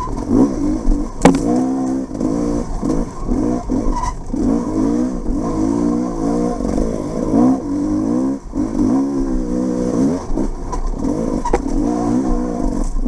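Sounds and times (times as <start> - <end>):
dirt bike engine revving: 0.0 - 13.0
sharp knock: 1.2 - 1.6.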